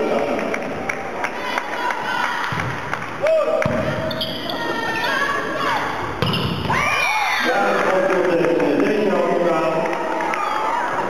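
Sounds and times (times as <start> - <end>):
people cheering: 0.0 - 11.0
volleyball hit: 2.4 - 4.2, 6.2 - 7.0.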